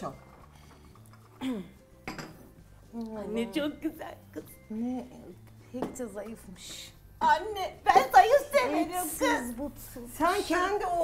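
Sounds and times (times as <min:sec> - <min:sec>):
cups and glasses clinking on tray: 0:02.0 - 0:02.6.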